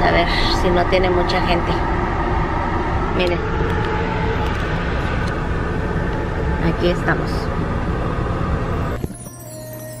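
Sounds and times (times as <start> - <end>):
car running inside cabin: 0.0 - 10.0.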